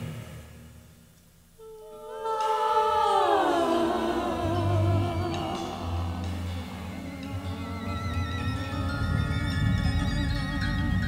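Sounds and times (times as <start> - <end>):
choir sliding down in pitch: 1.6 - 11.0.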